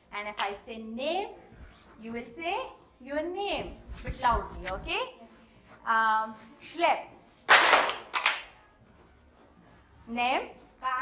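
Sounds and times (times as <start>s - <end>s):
children clapping: 7.5s - 8.5s.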